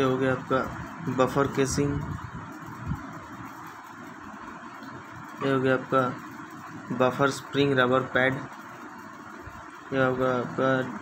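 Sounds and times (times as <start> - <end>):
background hiss and room noise: 0.0 - 11.0.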